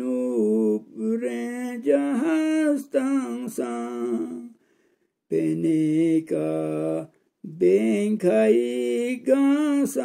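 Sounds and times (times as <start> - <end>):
man singing long held notes: 0.0 - 4.6, 5.3 - 10.0.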